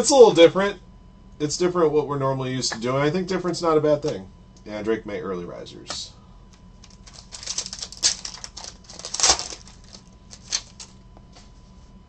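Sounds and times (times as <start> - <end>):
foil wrapper crinkling: 6.8 - 10.9.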